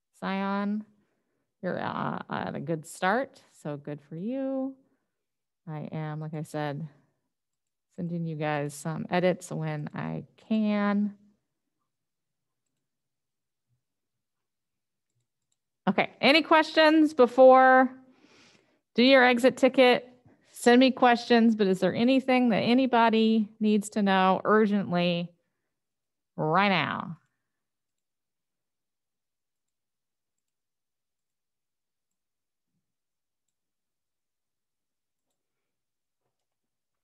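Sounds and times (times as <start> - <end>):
woman speaking: 0.2 - 0.9, 1.6 - 4.8, 5.7 - 7.0, 8.0 - 11.3, 15.9 - 18.0, 18.9 - 25.3, 26.4 - 27.2
woman's voice: 0.2 - 0.9, 1.6 - 4.8, 5.7 - 7.0, 8.0 - 11.3, 15.9 - 18.0, 19.0 - 25.3, 26.4 - 27.2.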